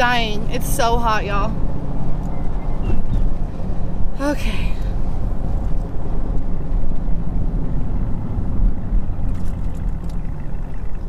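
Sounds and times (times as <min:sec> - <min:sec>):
car engine rumble: 0:00.0 - 0:11.0.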